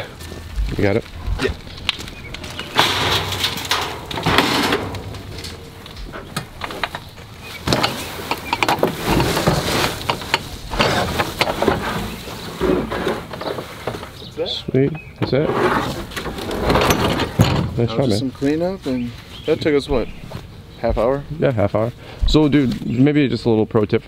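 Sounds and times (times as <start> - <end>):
shrubs rustling: 0.0 - 23.6
wheelbarrow dumping load: 0.4 - 14.4, 15.3 - 18.1
wheelbarrow clattering on ramp: 2.4 - 14.2, 15.3 - 18.0.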